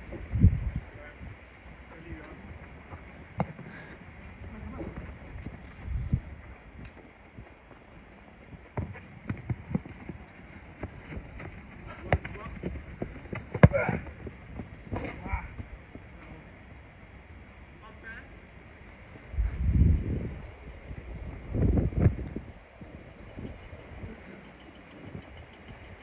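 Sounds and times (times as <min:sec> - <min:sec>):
football being kicked: 0:08.7 - 0:09.8, 0:11.1 - 0:14.2.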